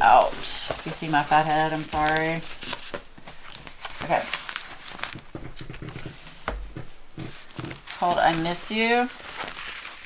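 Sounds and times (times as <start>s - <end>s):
plastic film crinkling: 0.0s - 10.0s.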